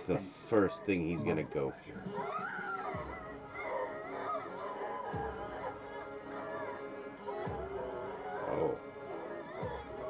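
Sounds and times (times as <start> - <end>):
horror film score: 0.0 - 10.0.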